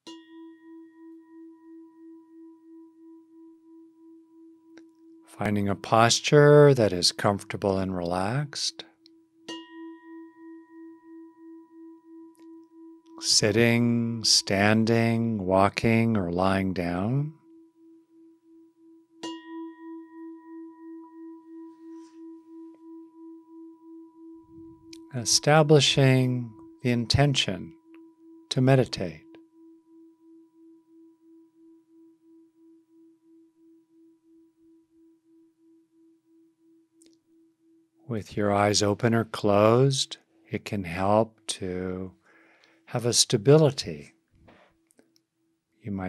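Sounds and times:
meditation bell ringing: 0.0s - 6.8s, 8.2s - 39.6s.

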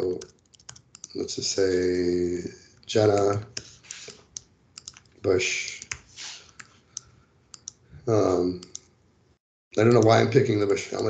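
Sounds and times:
computer mouse clicks: 0.2s - 1.2s, 3.1s - 5.1s, 5.7s - 7.8s, 8.6s - 8.9s.

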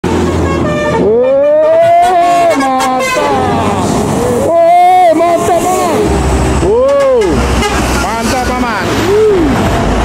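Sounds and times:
musical bus air horn: 0.0s - 3.5s, 6.9s - 8.0s
low diesel engine hum: 0.0s - 10.0s.

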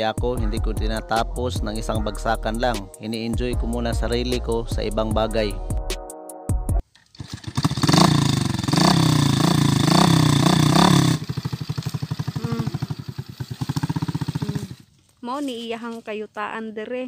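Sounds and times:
small motorcycle engine revving: 7.0s - 14.9s.

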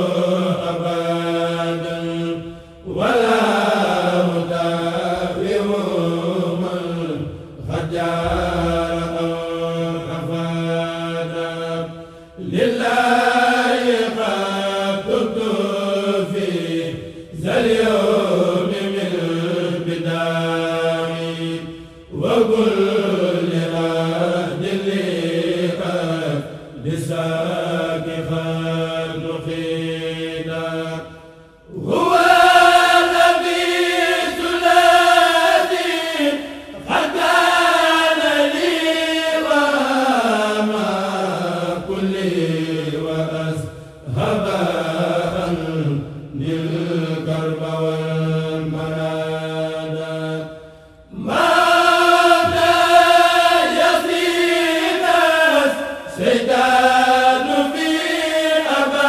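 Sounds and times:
male choir chanting unaccompanied: 0.0s - 59.0s.

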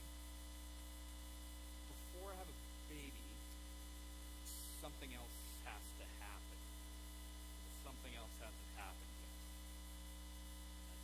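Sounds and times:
electrical mains hum: 0.0s - 11.0s
man's voice: 1.9s - 3.4s, 4.5s - 6.6s, 7.7s - 9.5s.

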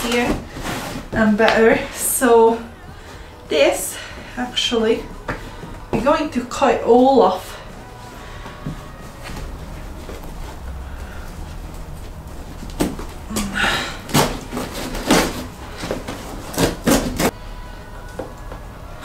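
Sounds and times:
low steady hum: 0.0s - 19.0s
fabric tearing and rustling: 9.2s - 17.4s.

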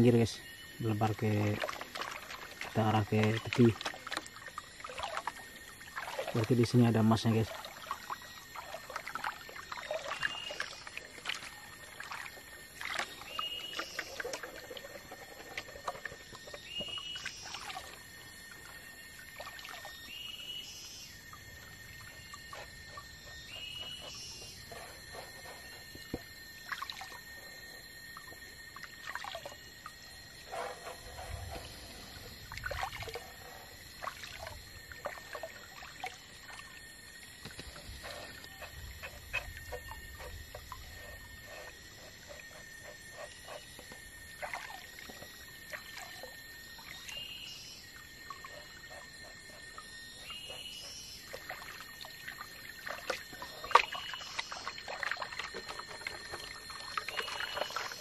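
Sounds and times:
water sloshing in a pan: 0.9s - 20.4s, 21.4s - 49.4s, 51.2s - 58.0s.

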